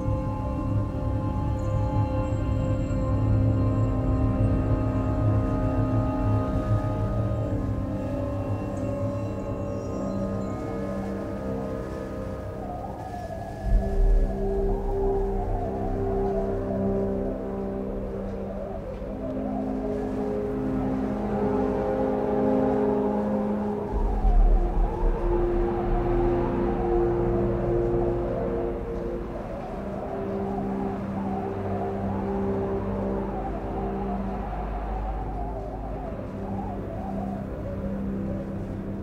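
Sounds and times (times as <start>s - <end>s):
slow ambient chords: 0.0s - 39.0s
deep bass drone: 13.6s - 39.0s.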